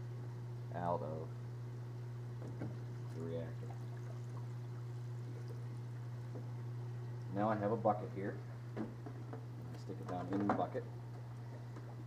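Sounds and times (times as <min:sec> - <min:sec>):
water dribbling: 0:01.9 - 0:12.0.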